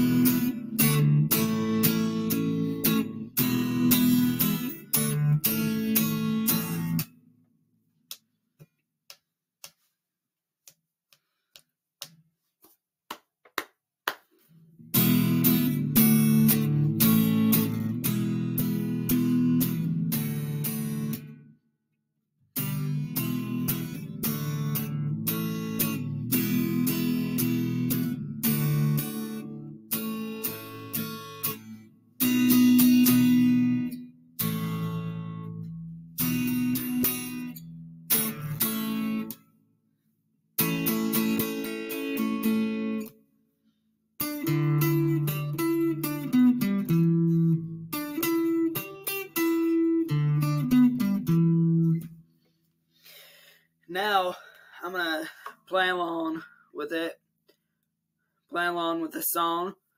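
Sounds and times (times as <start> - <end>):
electric guitar strumming chords: 0.0 - 7.2, 14.8 - 21.5, 22.6 - 39.4, 40.6 - 43.1, 44.2 - 52.2.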